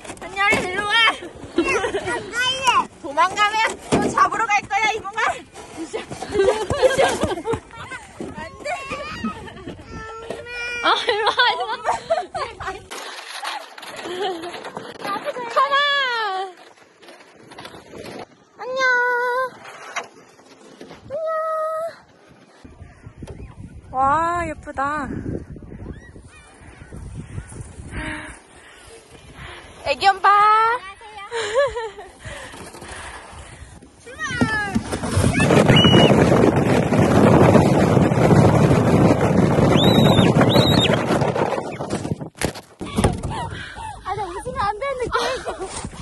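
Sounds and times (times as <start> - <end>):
sled scraping over snow: 0.0 - 9.9, 11.0 - 22.7, 26.2 - 43.5.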